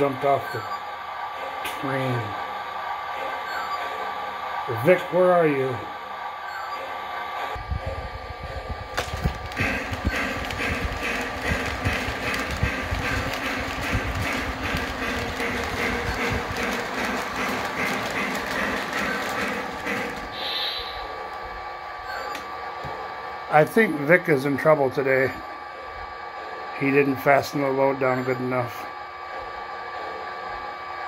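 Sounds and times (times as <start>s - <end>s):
model train wheels clicking: 9.0s - 20.5s
model train motor humming: 9.0s - 21.7s.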